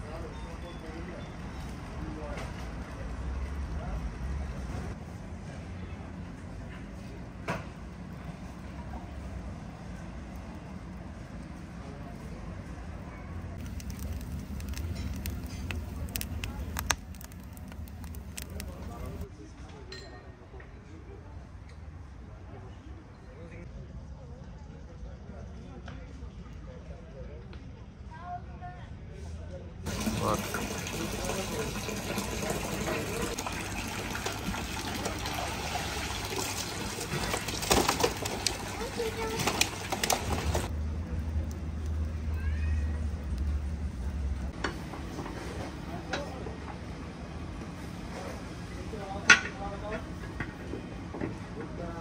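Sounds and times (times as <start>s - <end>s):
water gushing into a pool: 13.6s - 19.2s, 29.9s - 40.7s
wood fire crackling and popping: 13.6s - 19.3s, 29.9s - 42.4s.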